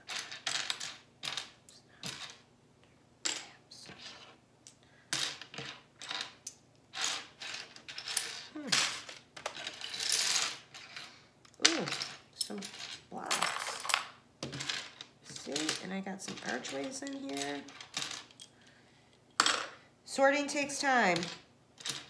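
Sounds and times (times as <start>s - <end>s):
plastic bricks clattering: 12.6s - 18.3s.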